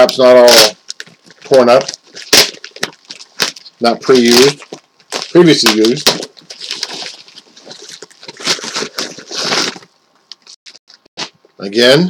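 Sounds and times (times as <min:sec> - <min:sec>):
bubble wrap handled: 0:00.0 - 0:10.6
packing material rustling: 0:00.0 - 0:11.1.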